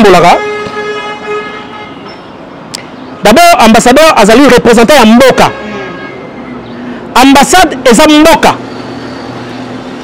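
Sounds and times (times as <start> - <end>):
street traffic hiss: 0.0 - 10.0.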